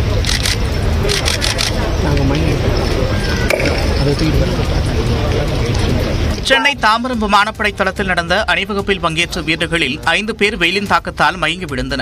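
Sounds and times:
voices: 0:00.0 - 0:12.0
camera shutters clicking: 0:00.2 - 0:01.8.

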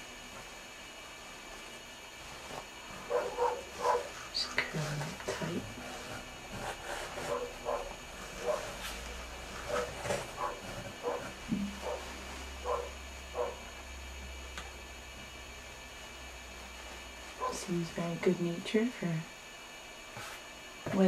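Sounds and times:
dog barking: 0:03.1 - 0:04.2, 0:07.2 - 0:08.8, 0:09.7 - 0:13.7, 0:17.4 - 0:17.6.

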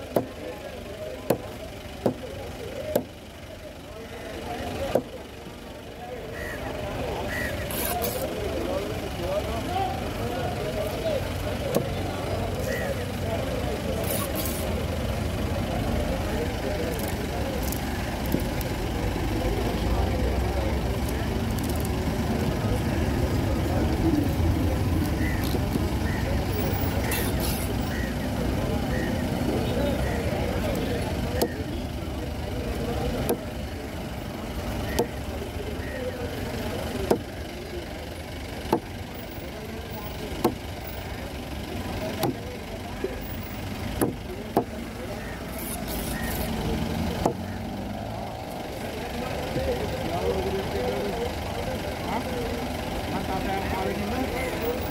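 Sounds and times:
background chatter: 0:00.0 - 0:54.9
vehicles rumbling: 0:00.0 - 0:54.9.

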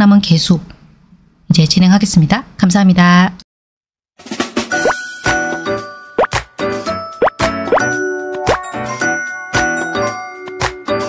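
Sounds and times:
rising pop effects: 0:04.7 - 0:05.4, 0:06.2 - 0:06.5, 0:07.2 - 0:08.7
light jingle music: 0:04.7 - 0:11.0.

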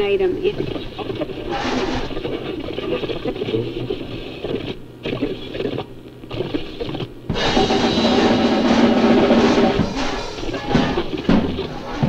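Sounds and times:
dense rattling noise: 0:07.3 - 0:12.0.

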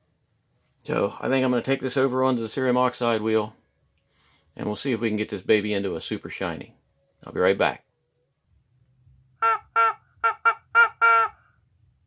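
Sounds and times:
rubber chicken toy squawking: 0:09.4 - 0:11.5.

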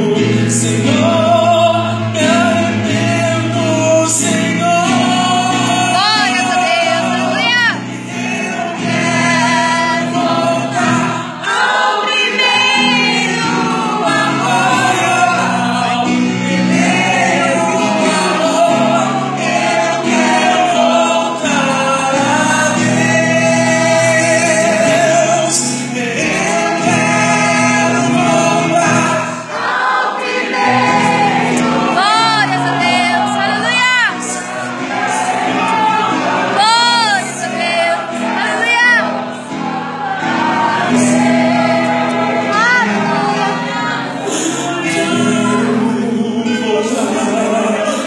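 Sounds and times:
man singing through microphone: 0:00.0 - 0:11.4, 0:12.5 - 0:29.5, 0:31.9 - 0:34.5, 0:36.5 - 0:39.1, 0:40.8 - 0:48.0
sustained backing accompaniment: 0:00.0 - 0:48.0.

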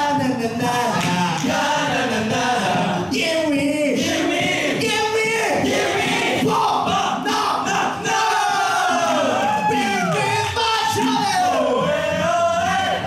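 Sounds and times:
male a cappella group singing: 0:00.0 - 0:13.0.

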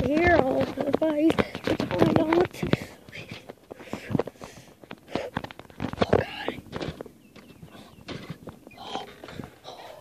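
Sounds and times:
footsteps on wooden deck: 0:00.0 - 0:09.8.

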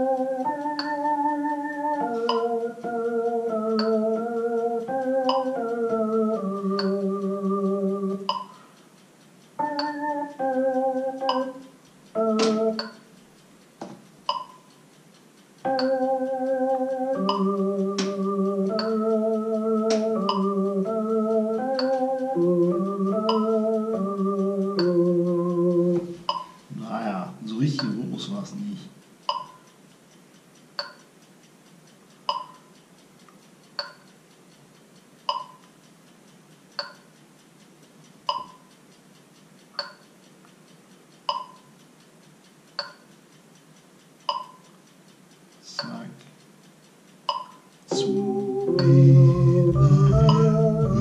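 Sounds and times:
synthesizer organ-like chords: 0:00.0 - 0:08.6, 0:09.6 - 0:13.0, 0:15.6 - 0:27.8, 0:47.9 - 0:51.0
man speaking: 0:26.7 - 0:29.0, 0:45.6 - 0:46.2.

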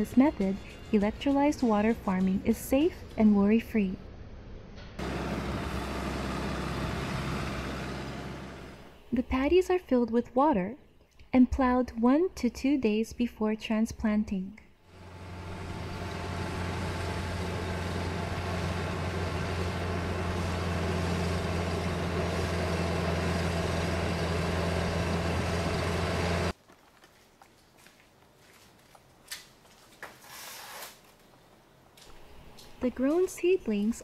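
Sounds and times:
tractor engine running: 0:05.0 - 0:09.1, 0:14.9 - 0:26.6
rotary tiller churning water: 0:15.0 - 0:26.5.

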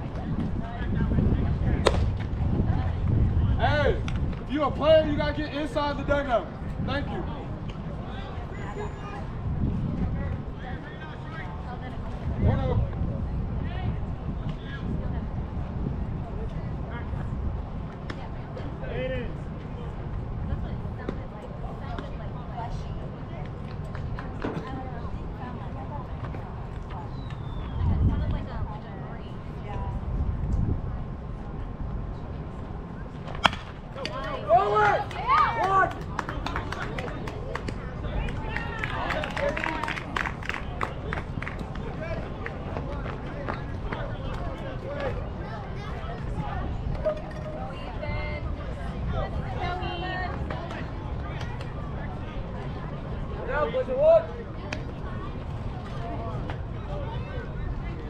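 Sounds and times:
steady low rumble: 0:00.0 - 0:04.8
baseball bat cracking ball: 0:01.8 - 0:02.3, 0:33.3 - 0:34.3
crowd shouting and cheering: 0:34.0 - 0:42.6
scattered clapping: 0:34.9 - 0:44.4.

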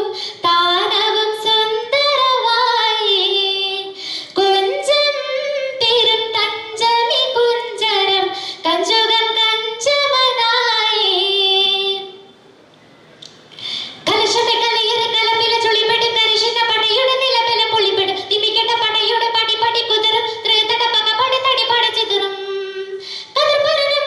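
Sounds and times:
girl singing into a microphone: 0:00.0 - 0:12.3, 0:13.6 - 0:24.0.

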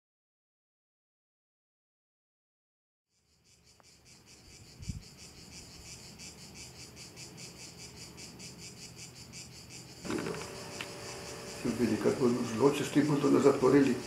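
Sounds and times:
cicadas singing: 0:03.1 - 0:14.0.

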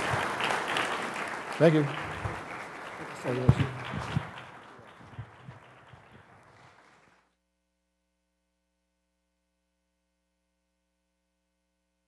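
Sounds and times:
audience applause: 0:00.0 - 0:07.3.

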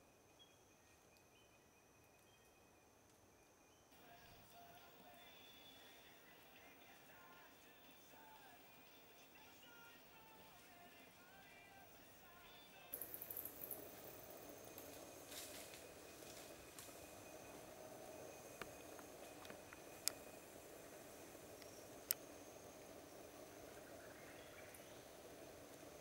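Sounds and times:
low hiss: 0:00.0 - 0:26.0
background music: 0:04.0 - 0:13.0
high-pitched insect drone: 0:11.4 - 0:26.0.

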